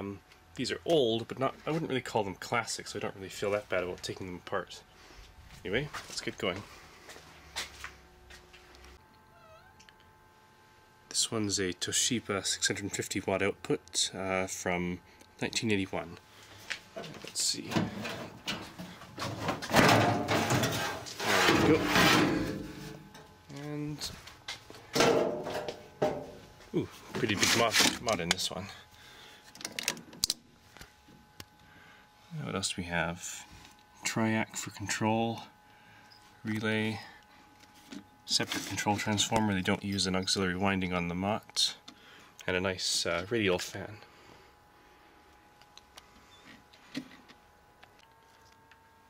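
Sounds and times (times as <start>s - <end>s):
faint steady hum: 0.0s - 49.0s.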